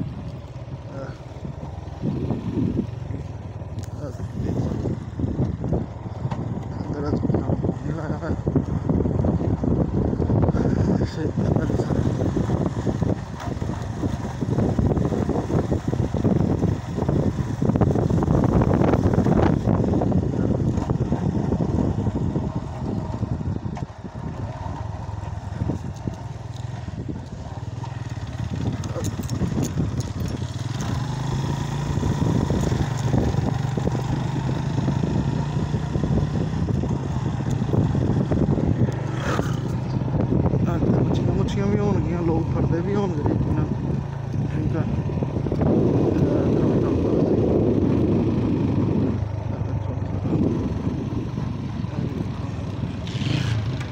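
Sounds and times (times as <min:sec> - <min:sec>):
motorcycle engine running: 0:00.0 - 0:53.9
road noise: 0:00.0 - 0:53.9.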